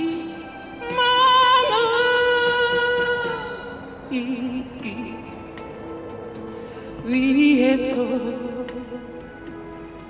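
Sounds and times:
woman singing into microphone: 0:00.0 - 0:05.7, 0:06.9 - 0:09.3
karaoke backing track: 0:00.0 - 0:10.0.

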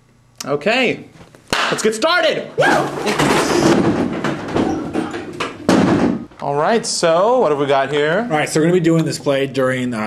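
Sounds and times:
people whooping: 0:02.6 - 0:03.1
loud thump: 0:03.1 - 0:06.3.

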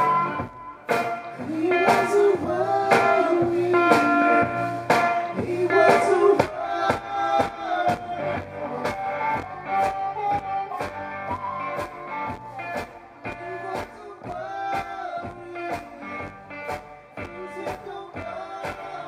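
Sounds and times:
electric guitar: 0:00.0 - 0:19.0
steady drum beat: 0:00.0 - 0:19.0.

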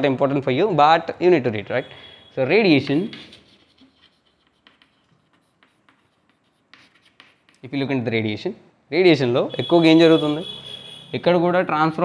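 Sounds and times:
chalk scratching on blackboard: 0:02.6 - 0:07.9
chalk tapping on blackboard: 0:02.9 - 0:07.9.

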